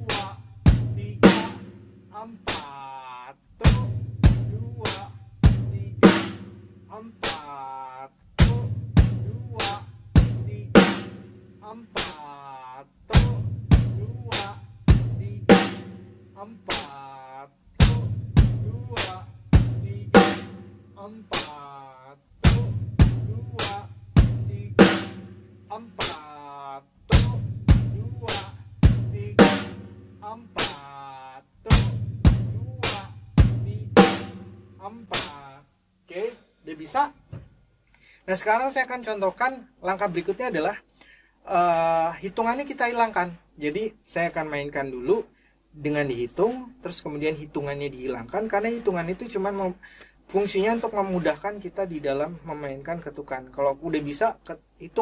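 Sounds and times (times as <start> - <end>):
drum kit slow beat: 0.0 - 3.0, 3.6 - 36.0, 48.2 - 52.2.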